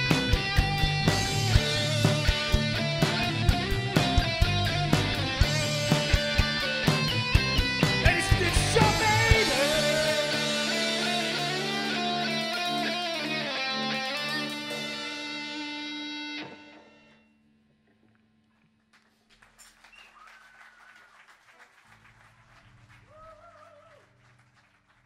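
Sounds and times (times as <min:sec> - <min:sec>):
electric guitars and bass chord: 0:00.0 - 0:17.4.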